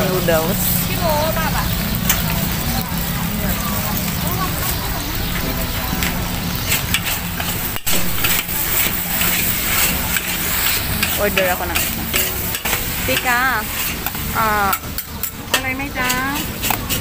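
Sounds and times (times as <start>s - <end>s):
noodles sizzling: 0.0s - 17.0s
metal spatulas scraping a wok: 4.0s - 17.0s.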